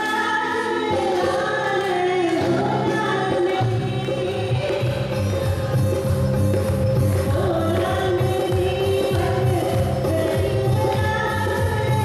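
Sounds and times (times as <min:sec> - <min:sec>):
woman singing into a microphone: 0:00.0 - 0:12.0
live band with electric guitars: 0:02.4 - 0:12.0.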